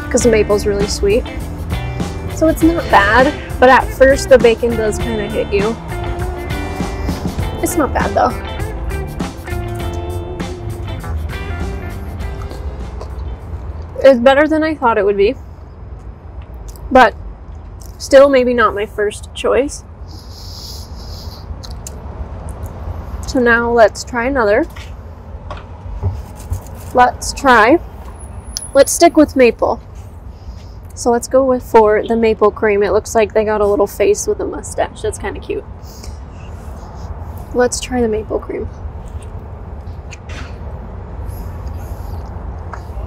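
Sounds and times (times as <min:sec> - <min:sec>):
mouth clicks: 0:20.1 - 0:22.8, 0:39.0 - 0:40.4.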